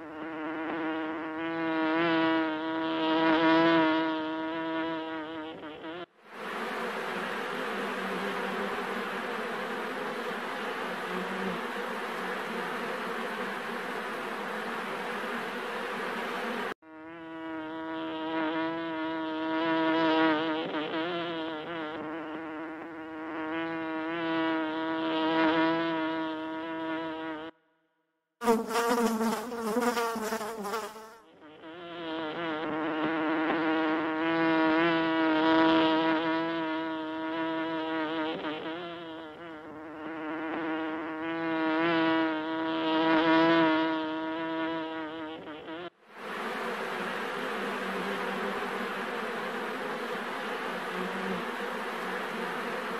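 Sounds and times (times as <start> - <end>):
honey bees buzzing: 0.0 - 27.5, 28.4 - 52.9.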